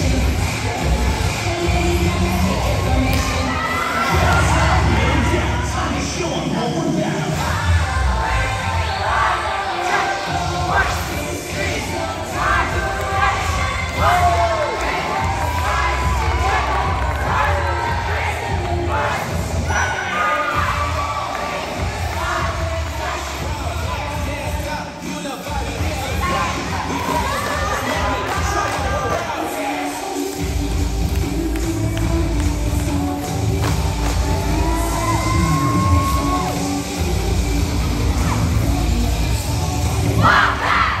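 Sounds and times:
music with thumping bass beat: 0.0 - 3.4, 30.3 - 40.2
music with steady bass: 0.0 - 9.5, 10.2 - 19.8, 20.5 - 29.5, 30.1 - 41.0
crowd cheering and shouting: 0.0 - 31.5, 33.0 - 41.0.

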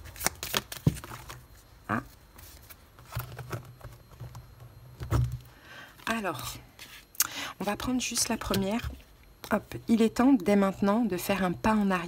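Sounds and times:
cards being shuffled: 0.0 - 1.4.

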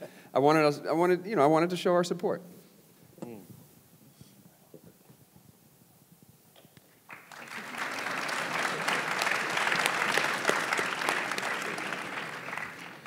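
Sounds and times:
audience applauding: 7.1 - 13.0.

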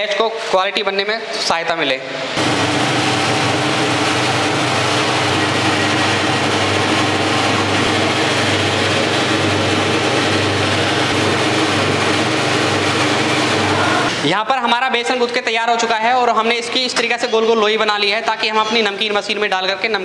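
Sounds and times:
dough mixer motor humming: 2.4 - 14.3.

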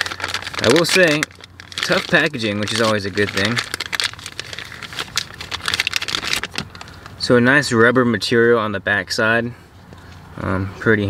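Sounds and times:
plastic bag crinkling: 0.0 - 7.2.

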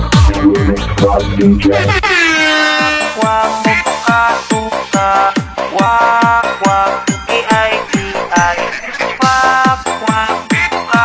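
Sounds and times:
short repeated synth notes: 0.0 - 3.3
horn-like synth tone sliding down: 0.2 - 3.7.

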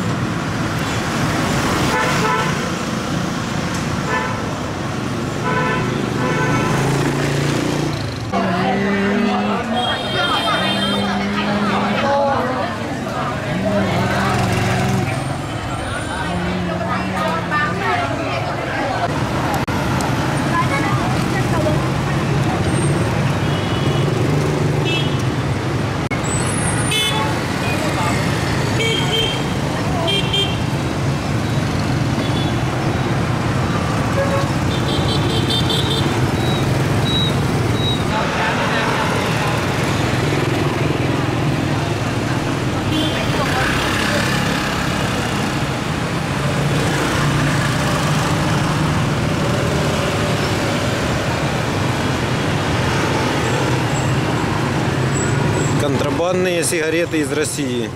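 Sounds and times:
scooter and motorcycle traffic: 0.0 - 57.9.

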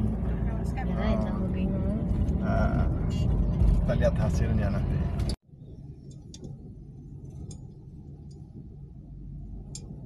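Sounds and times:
car cabin engine and road rumble: 0.0 - 10.0.

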